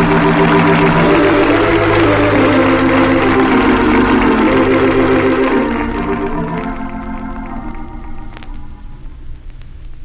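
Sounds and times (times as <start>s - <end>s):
sustained organ chords: 0.0s - 9.2s.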